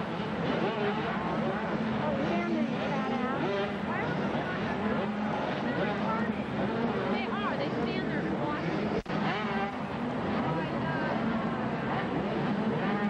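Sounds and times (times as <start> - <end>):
motocross engines revving: 0.0 - 13.0
steady engine drone: 0.0 - 13.0.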